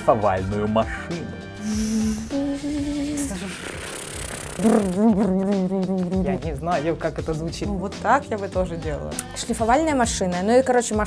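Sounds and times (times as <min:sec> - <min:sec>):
woman humming like a sander: 0:01.6 - 0:06.1.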